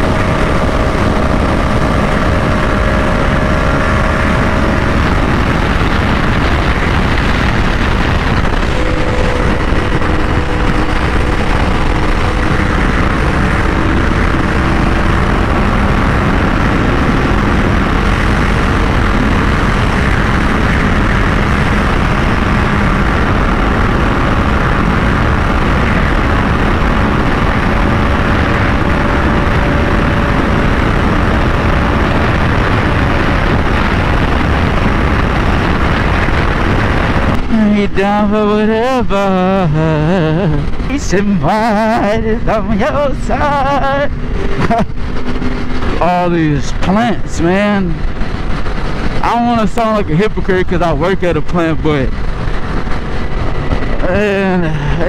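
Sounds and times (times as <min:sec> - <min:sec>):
motorcycle engine running: 0:00.0 - 0:55.0
wind rush on microphone: 0:00.0 - 0:55.0.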